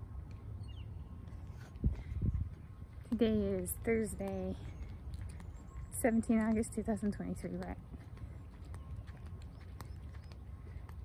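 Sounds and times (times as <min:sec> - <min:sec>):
wind rumble on microphone: 0:00.0 - 0:11.0
footsteps walking: 0:01.1 - 0:11.0.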